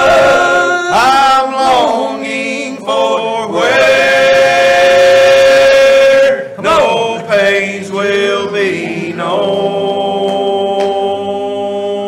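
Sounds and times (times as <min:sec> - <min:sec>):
men singing together: 0:00.0 - 0:12.0.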